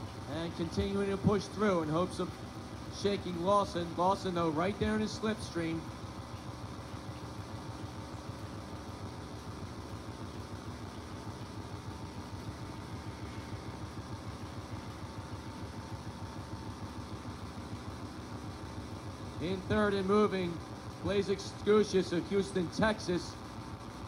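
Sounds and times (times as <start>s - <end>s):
faint steady hum: 0.0s - 24.0s
low mechanical rumble: 0.0s - 24.0s.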